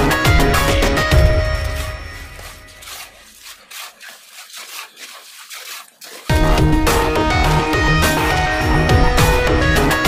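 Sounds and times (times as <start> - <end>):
background music: 0.0 - 3.4, 6.3 - 10.0
shovels scraping wet concrete: 1.4 - 6.3.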